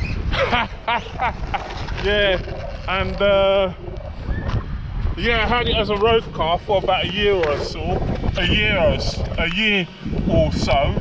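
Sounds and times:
man laughing: 0:00.3 - 0:02.4.

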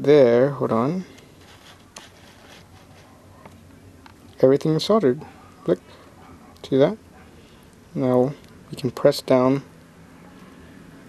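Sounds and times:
faint cable handling noise: 0:01.1 - 0:04.4.

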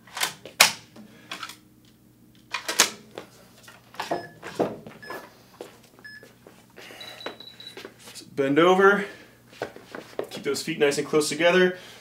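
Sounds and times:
electronic timer beeps: 0:06.0 - 0:06.2, 0:07.0 - 0:07.8.

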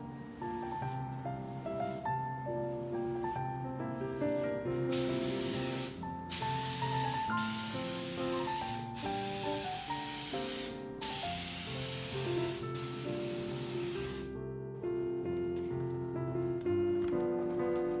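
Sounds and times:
spray gun hissing: 0:04.1 - 0:14.3.

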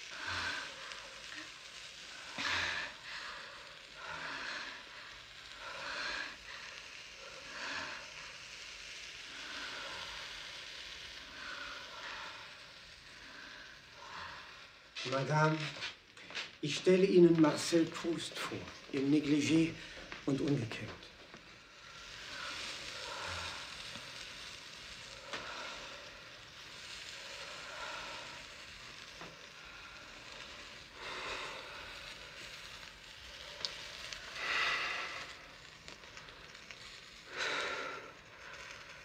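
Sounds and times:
man breathing in: 0:00.0 - 0:14.9, 0:21.7 - 0:39.0
powder smouldering hiss and crackle: 0:00.0 - 0:39.0.

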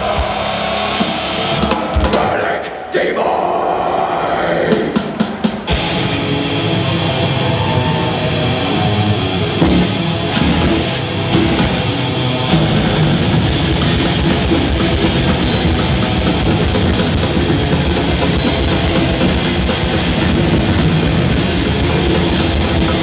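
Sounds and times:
drum kit: 0:00.0 - 0:02.5, 0:04.7 - 0:23.0
distorted electric guitars: 0:00.0 - 0:23.0.

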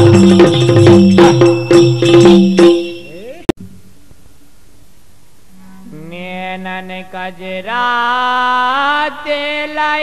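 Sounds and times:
man singing a long note: 0:05.5 - 0:10.0.

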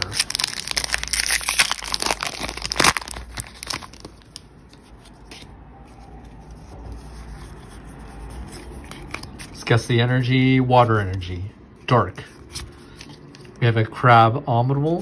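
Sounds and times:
foil wrapper tearing and crinkling: 0:00.0 - 0:04.5
faint rustling of cards: 0:00.0 - 0:13.8.

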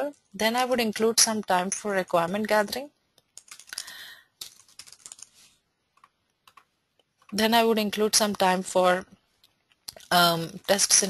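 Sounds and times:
keyboard typing: 0:02.2 - 0:07.5.

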